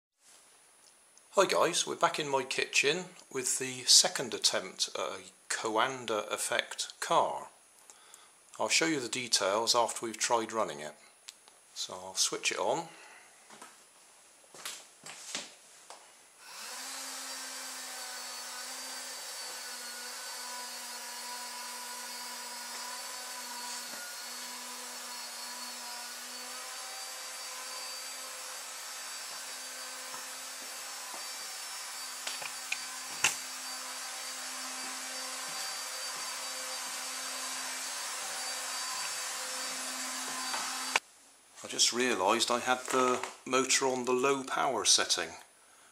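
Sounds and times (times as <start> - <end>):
vacuum cleaner motor whirring: 16.4 - 41.0.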